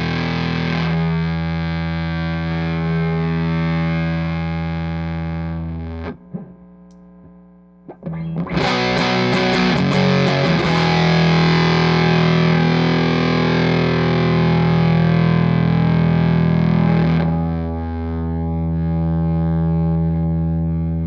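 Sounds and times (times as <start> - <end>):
fuzz electric guitar chords: 0.0 - 21.0.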